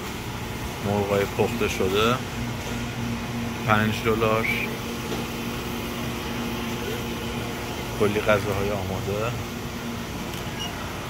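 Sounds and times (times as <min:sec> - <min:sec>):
low machinery hum: 0:00.0 - 0:11.0.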